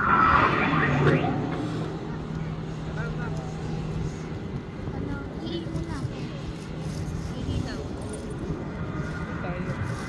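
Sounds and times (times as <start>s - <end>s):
people talking: 0.5s - 4.2s, 4.8s - 6.6s, 7.2s - 8.4s.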